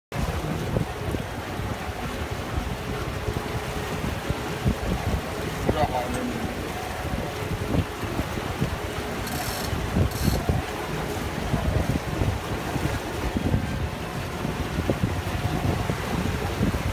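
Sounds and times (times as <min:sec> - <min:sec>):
rushing water: 0:00.1 - 0:16.9
wind buffeting microphone: 0:00.1 - 0:16.9.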